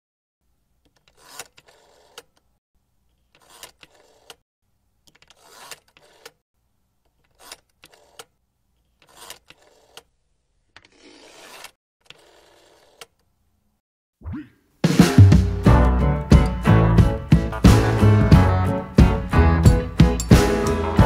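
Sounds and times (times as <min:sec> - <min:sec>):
rotary dial whirring: 0:00.8 - 0:02.5, 0:03.2 - 0:04.4, 0:05.1 - 0:06.4, 0:07.0 - 0:10.1, 0:12.0 - 0:13.3.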